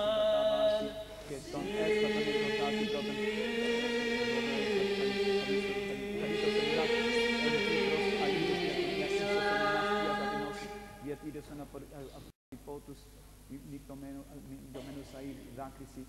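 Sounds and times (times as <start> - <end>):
men chanting in long notes: 0.0 - 11.1.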